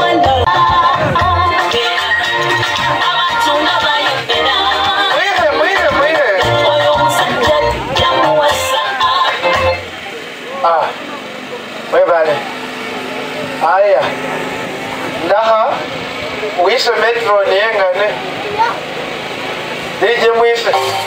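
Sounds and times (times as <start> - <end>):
man speaking over public address: 5.0 - 8.3, 9.9 - 14.4, 15.1 - 18.5, 19.9 - 21.0.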